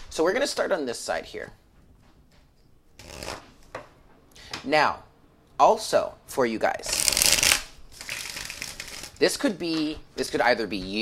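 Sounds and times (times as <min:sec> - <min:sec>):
cards being shuffled: 0:03.0 - 0:03.6, 0:06.9 - 0:09.2.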